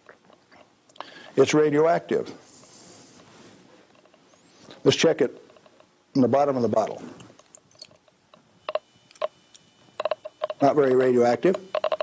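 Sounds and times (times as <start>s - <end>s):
radiation counter clicks: 7.4s - 12.0s.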